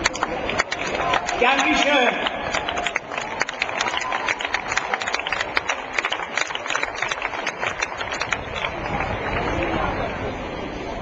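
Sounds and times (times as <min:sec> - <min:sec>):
large audience applauding: 0:00.0 - 0:10.2.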